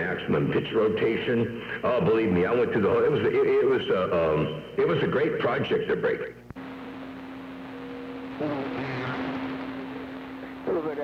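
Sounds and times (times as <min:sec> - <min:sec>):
radio static hiss: 0:00.0 - 0:11.0
constant heterodyne tone: 0:06.6 - 0:11.0
faint warbling radio signals: 0:06.6 - 0:11.0.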